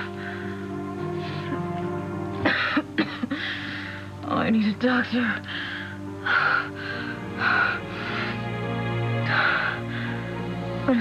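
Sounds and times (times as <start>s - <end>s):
background music: 0.0s - 11.0s
woman gasping and groaning in pain: 2.3s - 4.2s, 5.4s - 10.9s.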